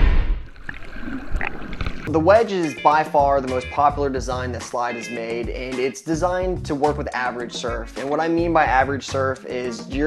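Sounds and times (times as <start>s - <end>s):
gurgling bubbling water: 0.4s - 2.2s.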